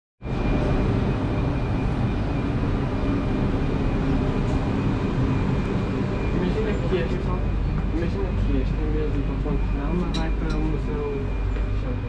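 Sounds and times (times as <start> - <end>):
faint high whine: 0.2 - 12.0
train rumbling at platform: 0.2 - 12.0.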